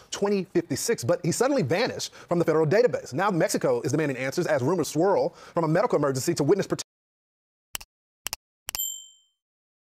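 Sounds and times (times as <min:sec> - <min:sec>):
bright ding: 0:08.7 - 0:09.4.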